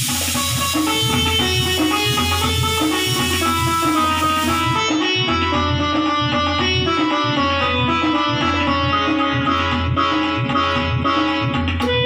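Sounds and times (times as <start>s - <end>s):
bass and percussion accompaniment: 0.0s - 12.0s
electronic keyboard melody: 0.4s - 12.0s.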